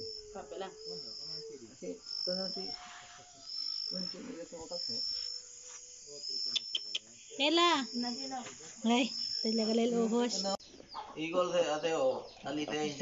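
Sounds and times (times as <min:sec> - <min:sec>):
insect chirping: 0:00.0 - 0:13.0.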